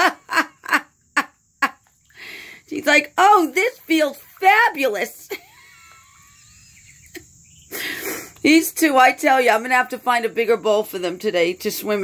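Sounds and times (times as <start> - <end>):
person laughing: 0.0 - 1.9, 5.3 - 8.2.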